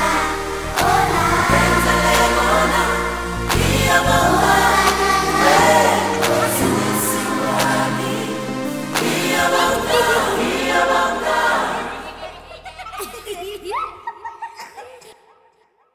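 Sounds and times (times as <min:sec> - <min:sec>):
gospel choir singing: 0:00.0 - 0:13.4
children laughing: 0:11.5 - 0:15.9.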